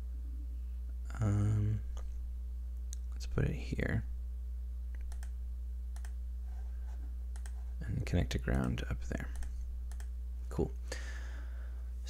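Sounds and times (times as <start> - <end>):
low electrical hum: 0.0 - 12.0
computer mouse clicks: 5.0 - 5.4, 6.0 - 6.2, 7.3 - 7.6, 9.3 - 10.1.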